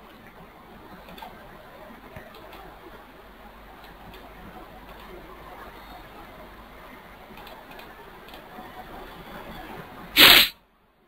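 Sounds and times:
microphone hiss: 0.0 - 10.8
loud noise burst: 10.2 - 10.5.

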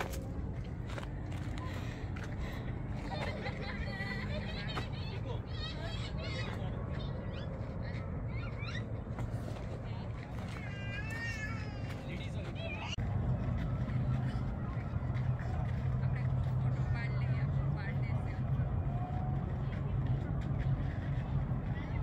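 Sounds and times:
steady low rumble: 0.0 - 22.0
people talking: 1.3 - 8.8, 9.6 - 22.0.

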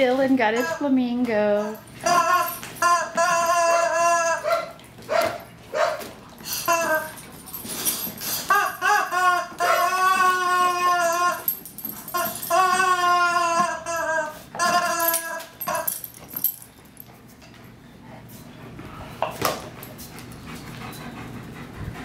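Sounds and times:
dog whining: 1.5 - 16.7.

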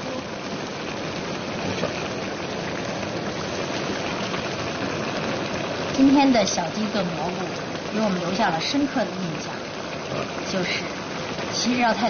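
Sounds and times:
stew bubbling in a wok: 0.0 - 12.0.

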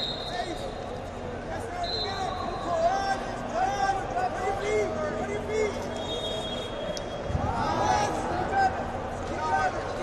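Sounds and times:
murmur of voices in a hall: 0.0 - 10.0.

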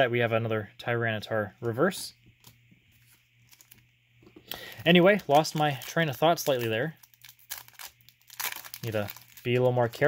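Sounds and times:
trading cards being handled: 2.3 - 10.0
foil wrapper crinkling: 3.4 - 3.8, 4.6 - 10.0.

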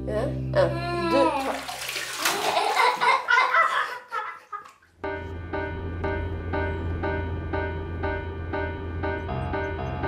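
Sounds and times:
child vocalizing: 0.6 - 1.7
bathwater sloshing and splashing: 1.1 - 5.0.

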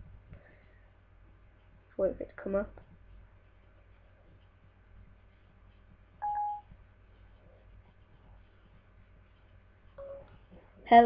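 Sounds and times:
short electronic beep: 6.2 - 6.6.

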